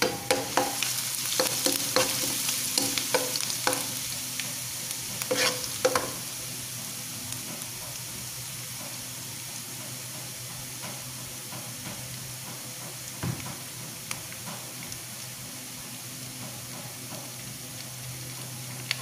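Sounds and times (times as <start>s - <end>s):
spatula knocking against wok: 0.0s - 4.0s, 5.2s - 6.2s
food sizzling in hot oil: 0.0s - 19.0s.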